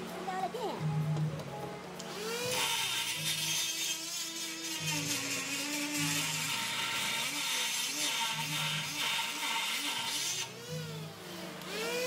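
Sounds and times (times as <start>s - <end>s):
die grinder cutting metal: 2.1s - 11.0s.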